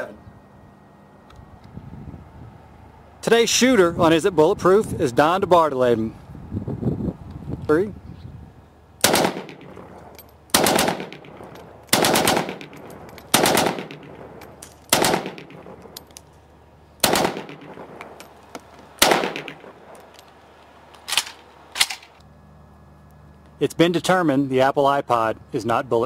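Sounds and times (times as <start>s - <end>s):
rifle shots with echo: 9.0s - 16.0s, 17.0s - 18.4s, 19.0s - 20.1s.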